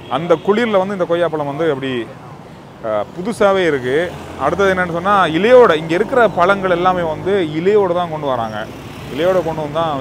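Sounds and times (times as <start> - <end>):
man talking: 0.0 - 2.2, 2.8 - 10.0
street traffic: 0.0 - 10.0.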